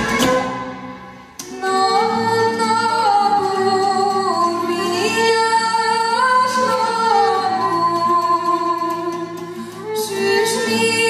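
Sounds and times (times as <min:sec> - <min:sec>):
fiddle: 0:00.0 - 0:11.0
koboz lute: 0:00.0 - 0:11.0.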